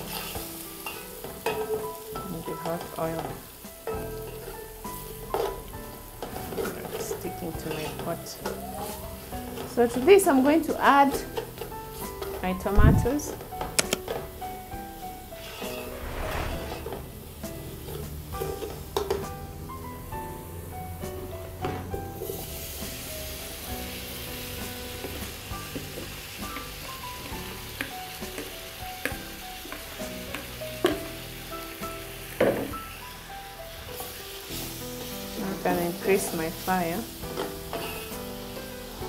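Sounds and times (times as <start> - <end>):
oil sizzling in a pot: 0.0 - 39.0.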